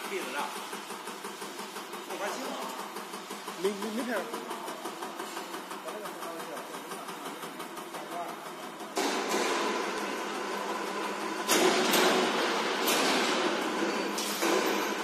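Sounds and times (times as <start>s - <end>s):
machine hum: 0.0s - 15.0s
sharp knocks: 9.0s - 10.2s.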